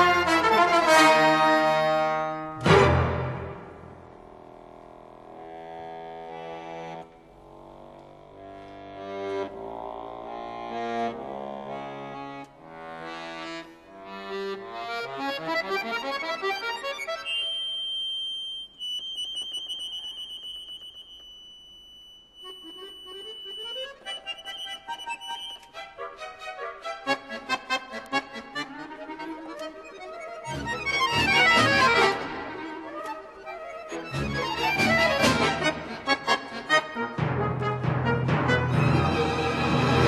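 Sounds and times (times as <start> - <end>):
accordion playing: 0.0 - 18.0, 22.3 - 40.0.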